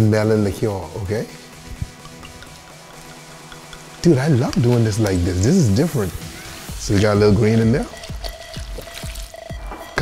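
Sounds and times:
background music with steady beat: 0:00.0 - 0:10.0
liquid pouring from glass bottle: 0:01.4 - 0:06.2, 0:06.8 - 0:09.5.

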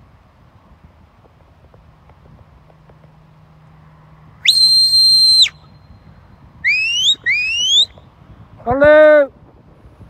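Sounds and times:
long high whistle: 0:04.4 - 0:08.0
quick rising whistles: 0:04.4 - 0:08.0.

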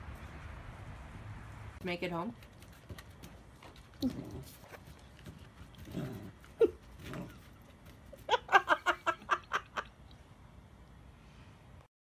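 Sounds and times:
puppy barking and growling: 0:03.8 - 0:07.8.

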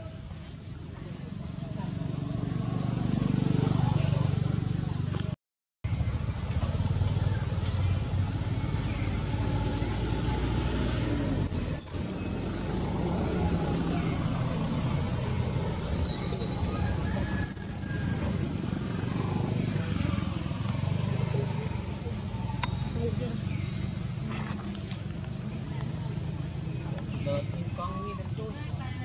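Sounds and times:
traffic rumble: 0:00.0 - 0:29.0.

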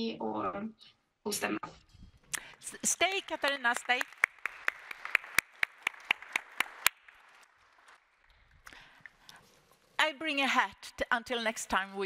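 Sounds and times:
audience applause: 0:03.0 - 0:08.3.

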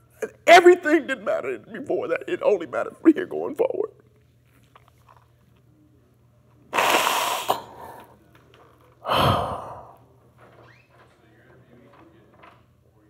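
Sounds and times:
man breathing out heavily: 0:09.0 - 0:10.0.

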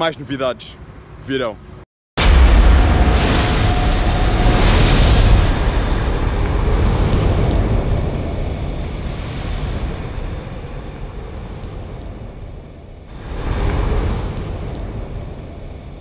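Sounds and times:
loud low rumble: 0:02.2 - 0:16.0
rising whoosh: 0:02.2 - 0:16.0
rushing fire-like noise: 0:02.2 - 0:16.0.

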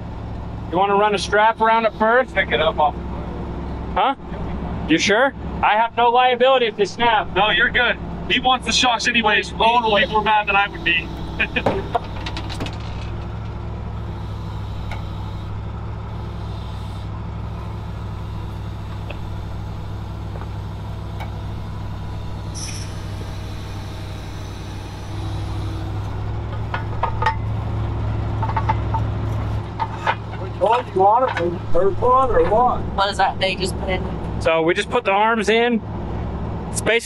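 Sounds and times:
truck engine idling: 0:00.0 - 0:37.0.

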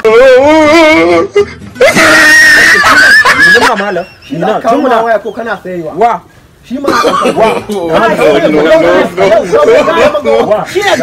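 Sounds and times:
person screaming: 0:00.0 - 0:03.7.

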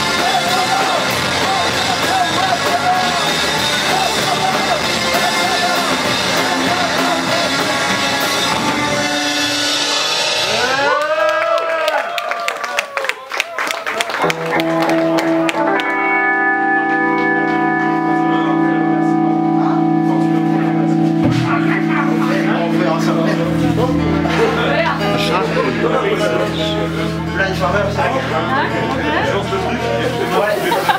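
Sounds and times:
live rock band playing: 0:00.0 - 0:11.5, 0:14.0 - 0:30.9
electric guitar pitch bends: 0:14.3 - 0:30.5.

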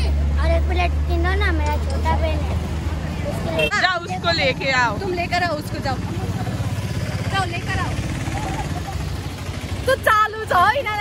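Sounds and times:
small engine idling: 0:04.1 - 0:11.0.

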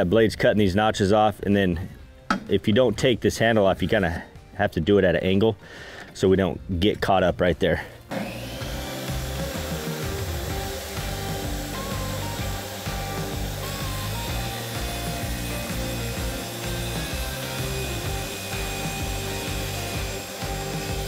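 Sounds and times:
background music: 0:00.0 - 0:21.0
table saw cutting rubber: 0:08.1 - 0:21.0.

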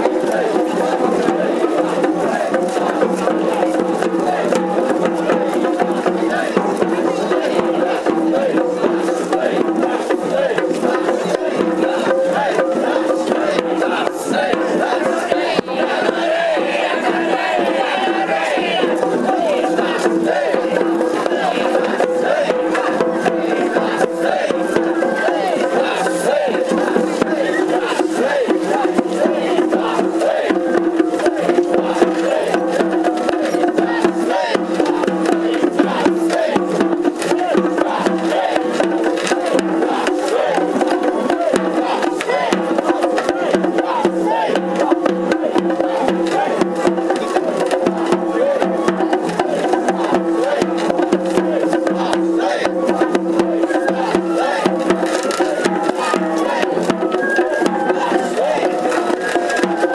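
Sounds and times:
crowd voices: 0:00.0 - 0:59.9
drum and clacking percussion: 0:00.0 - 0:59.9.

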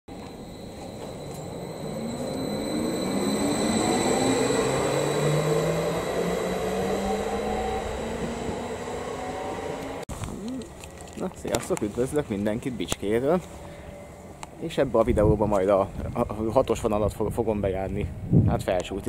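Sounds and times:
electric train traction whine: 0:00.1 - 0:10.1, 0:10.7 - 0:16.7.

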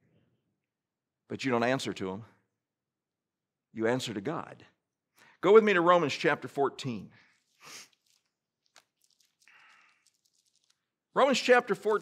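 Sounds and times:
pages turning: 0:07.4 - 0:12.0.

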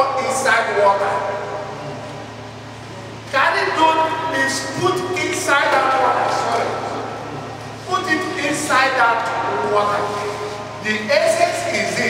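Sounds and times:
amplified speech echoing in hall: 0:00.0 - 0:12.0
low constant hum: 0:00.0 - 0:12.0.

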